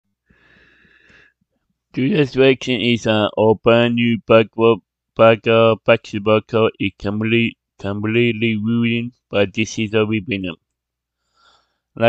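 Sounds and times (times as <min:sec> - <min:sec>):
breath close to microphone: 0:00.2 - 0:01.6, 0:11.1 - 0:12.0
man speaking: 0:02.0 - 0:10.6.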